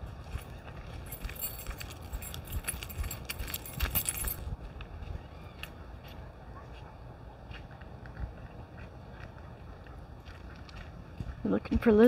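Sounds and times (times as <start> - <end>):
small metal pieces jingling: 0.9 - 4.5.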